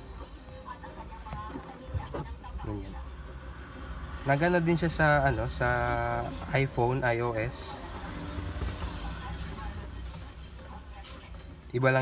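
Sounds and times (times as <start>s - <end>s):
car engine idling: 0.0s - 12.0s
faint voices: 0.0s - 12.0s.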